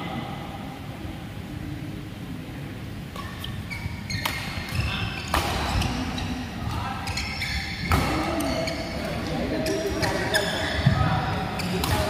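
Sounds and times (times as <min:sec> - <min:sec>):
racket hitting shuttlecock: 0:04.2 - 0:06.1, 0:07.1 - 0:08.5, 0:11.6 - 0:12.0.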